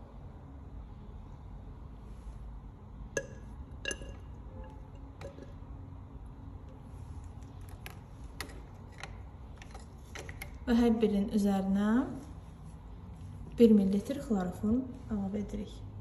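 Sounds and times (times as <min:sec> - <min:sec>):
low steady hum: 0:00.0 - 0:16.0
glass pipette clinking on glass: 0:03.2 - 0:05.6.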